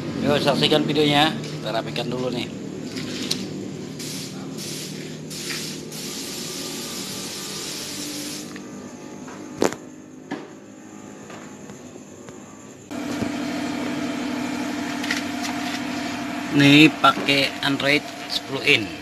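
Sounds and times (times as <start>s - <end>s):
mechanical hum and hiss: 0.0s - 19.0s.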